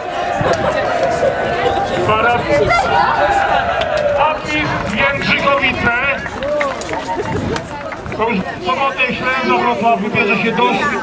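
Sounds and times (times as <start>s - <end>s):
men shouting and cheering: 0.0s - 11.0s.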